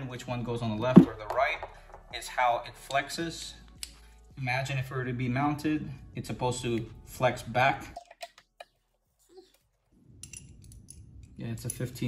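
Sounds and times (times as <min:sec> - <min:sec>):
small metal hardware clinking: 0:10.2 - 0:12.0.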